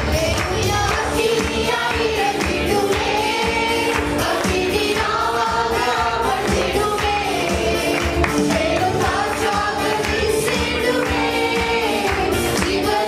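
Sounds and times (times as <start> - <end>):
group singing worship song: 0.0 - 13.0.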